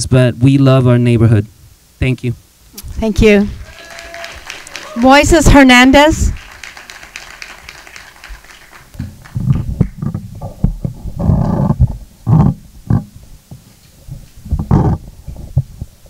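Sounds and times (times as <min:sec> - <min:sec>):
microphone handling thumps: 0:09.0 - 0:16.0.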